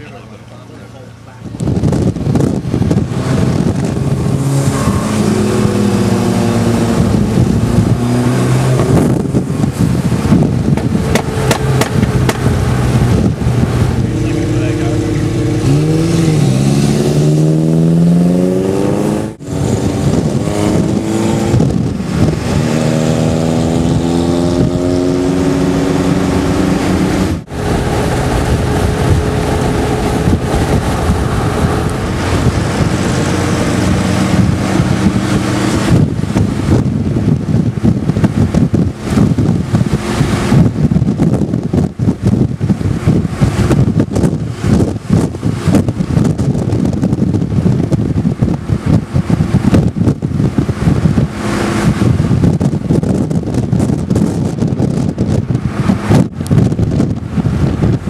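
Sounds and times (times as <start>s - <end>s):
car engines accelerating: 0.0s - 58.0s
road noise: 0.0s - 58.0s.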